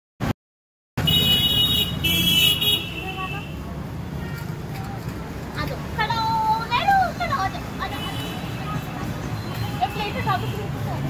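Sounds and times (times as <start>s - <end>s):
road traffic rumble: 1.0s - 11.0s.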